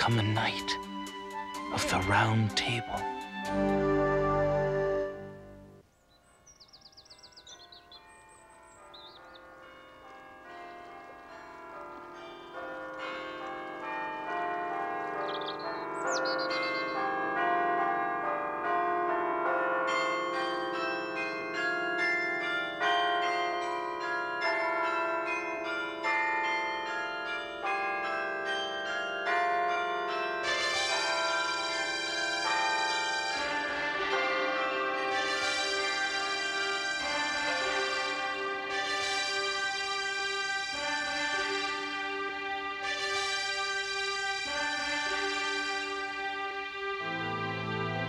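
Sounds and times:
church bells pealing: 0.0 - 5.8, 7.0 - 48.0.

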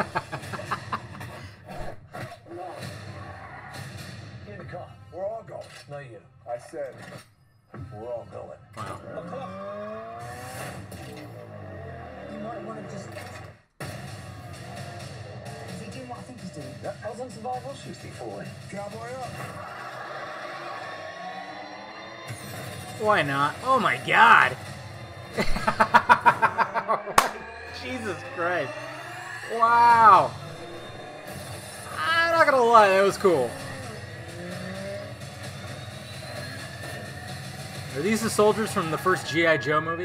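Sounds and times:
car chase vehicle noise: 0.0 - 5.1, 6.9 - 40.0
film music: 20.6 - 40.0
car engine running: 22.4 - 39.0.

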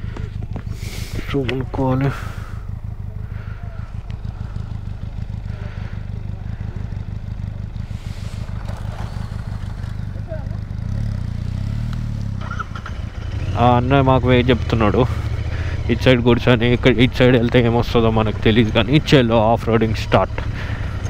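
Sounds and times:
motorcycle engine rumbling: 0.0 - 21.0.

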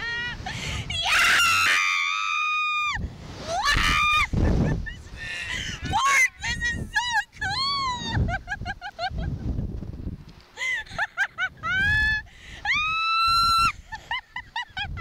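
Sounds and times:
riders screaming: 1.0 - 4.3.

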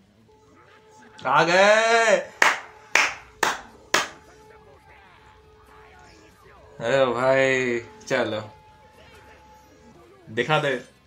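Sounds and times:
man shouting: 1.3 - 2.4
hand claps: 2.4 - 4.2.

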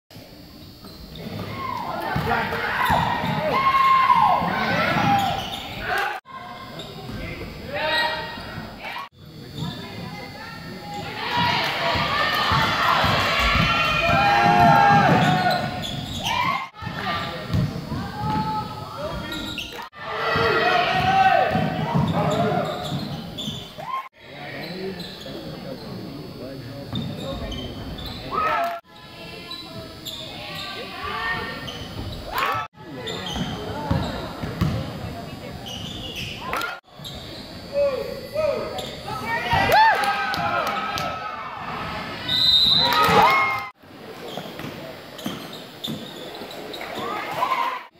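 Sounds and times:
voices of players and spectators: 0.1 - 47.9
shoes squeaking: 4.4 - 10.1, 11.8 - 19.9, 21.5 - 24.0, 24.6 - 39.4, 44.1 - 47.6
basketball bouncing on wooden floor: 17.5 - 18.6, 33.4 - 34.9.

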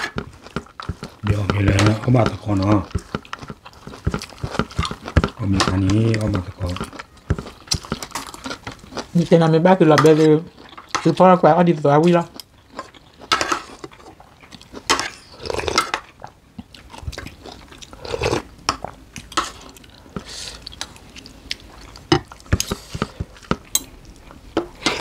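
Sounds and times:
people chewing food: 0.0 - 25.0.

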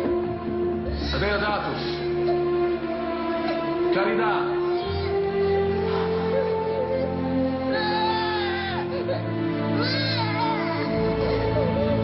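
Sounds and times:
film score with held notes: 0.0 - 12.0.

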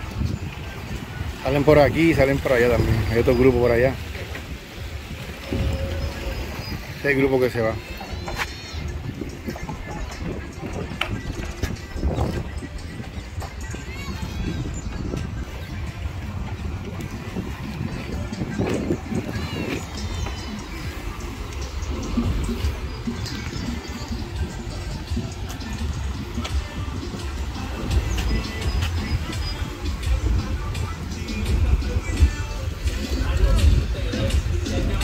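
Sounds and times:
music playing: 0.0 - 35.0
people chattering: 0.0 - 35.0
wind rumble on microphone: 0.0 - 35.0.

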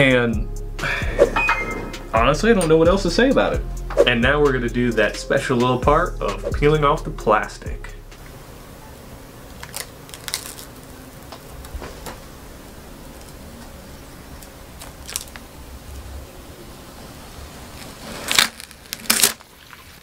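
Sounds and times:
plastic film crinkling: 9.5 - 12.2, 14.8 - 15.6, 17.7 - 20.0.

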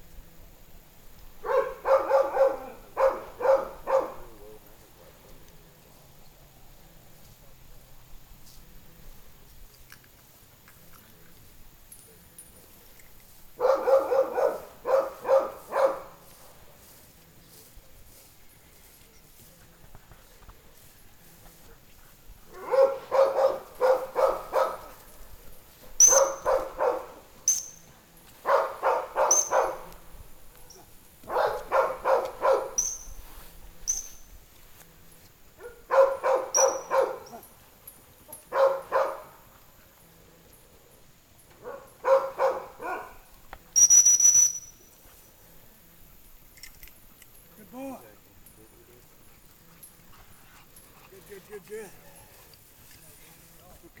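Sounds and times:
dog barking: 1.4 - 5.2, 13.6 - 16.3, 22.5 - 25.0, 25.9 - 27.3, 28.4 - 30.0, 30.7 - 32.9, 35.6 - 37.4, 38.4 - 39.5, 41.6 - 43.3
dog-training whistle blasts: 26.0 - 26.7, 29.3 - 29.8, 36.5 - 37.0, 43.8 - 44.8.

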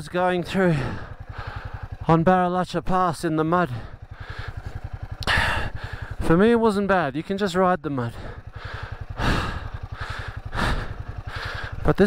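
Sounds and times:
motorcycle engine pulsing: 0.0 - 12.0
person breathing hard: 0.6 - 2.0, 3.7 - 6.2, 8.1 - 11.9.

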